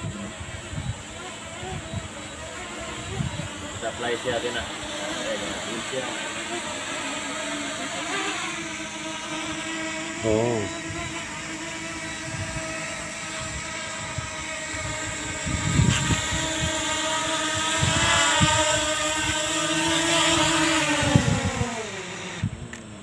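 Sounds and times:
drone propellers whining: 0.0 - 23.0
rotor wash buffeting microphone: 0.0 - 23.0.

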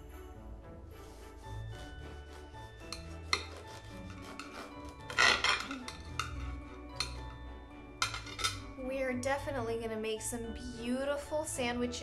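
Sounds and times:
knife sawing through crusty bread: 1.0 - 6.0.

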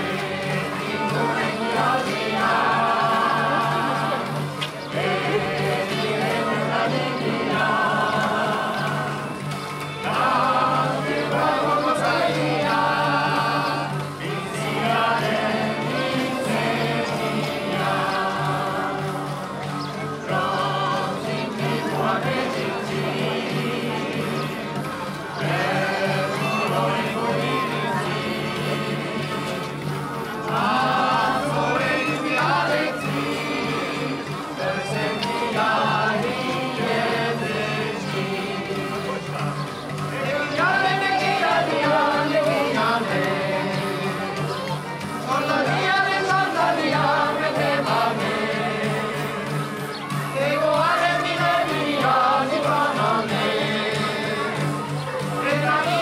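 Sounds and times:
fiddles playing folk dance music: 0.0 - 56.0
voices singing along: 0.0 - 56.0.

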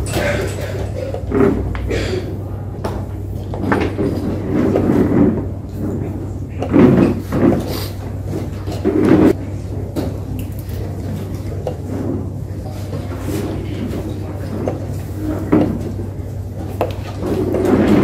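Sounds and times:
steady low hum: 0.0 - 18.0
murmur of voices: 5.1 - 18.0.

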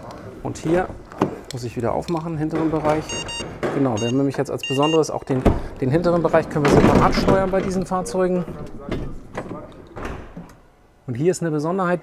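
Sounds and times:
knocks and clunks: 2.3 - 4.2, 5.3 - 10.6.

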